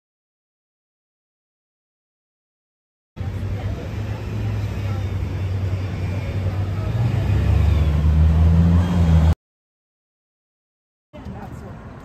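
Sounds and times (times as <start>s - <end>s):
traffic rumble: 3.2s - 9.4s, 11.2s - 12.0s.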